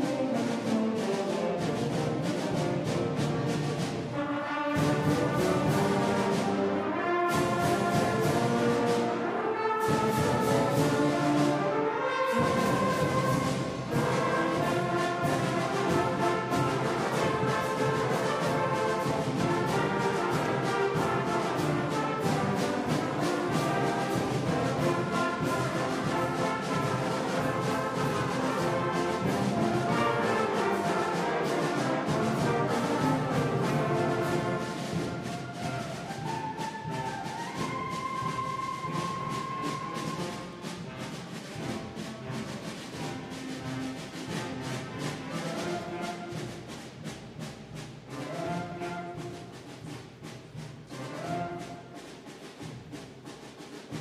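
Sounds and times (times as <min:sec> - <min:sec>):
concert band playing: 0:00.0 - 0:53.0
brass: 0:00.0 - 0:54.0
timpani: 0:00.0 - 0:54.0.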